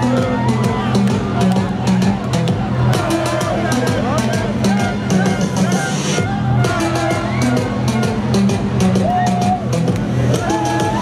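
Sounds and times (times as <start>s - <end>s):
crowd singing and shouting: 0.0s - 11.0s
loud music over pa: 0.0s - 11.0s.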